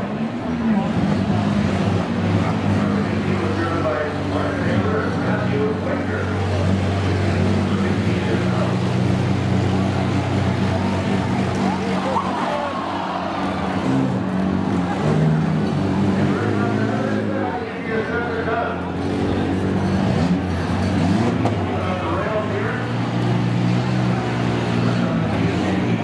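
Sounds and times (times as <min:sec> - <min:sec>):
minivan engines droning: 0:00.0 - 0:26.0.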